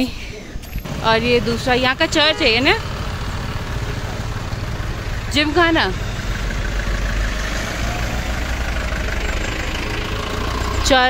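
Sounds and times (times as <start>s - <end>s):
road and wind noise: 0.0s - 11.0s
vehicle engine running: 0.6s - 11.0s.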